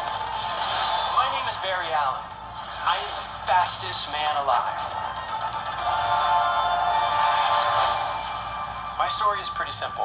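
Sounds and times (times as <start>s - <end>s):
score music through phone speaker: 0.0s - 10.0s.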